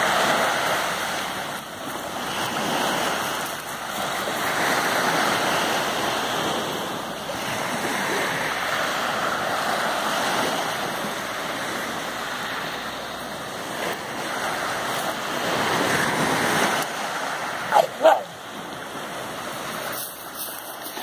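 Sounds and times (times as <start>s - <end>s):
small waves washing onto beach: 0.0s - 21.0s
dog barking: 17.7s - 18.4s.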